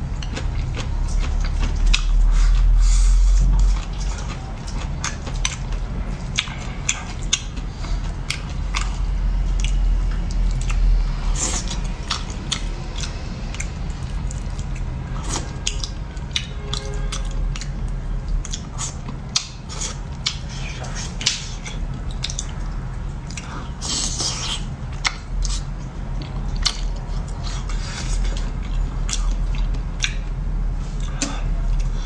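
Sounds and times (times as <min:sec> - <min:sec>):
steady low hum: 0:00.0 - 0:32.0
wet chewing sounds: 0:00.0 - 0:32.0.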